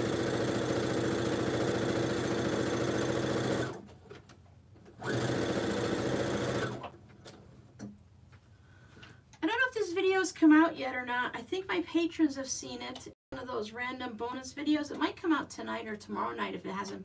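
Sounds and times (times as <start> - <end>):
sewing machine stitching: 0.0 - 3.9, 5.0 - 7.0.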